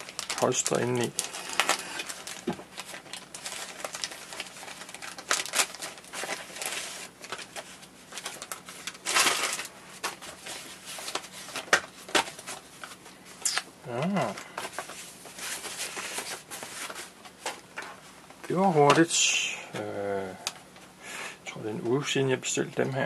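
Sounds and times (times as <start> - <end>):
plastic bag and foam crinkling: 0.0 - 19.5.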